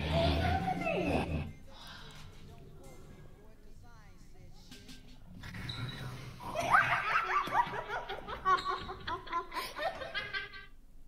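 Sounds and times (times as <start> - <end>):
high-pitched giggles: 6.5 - 10.8.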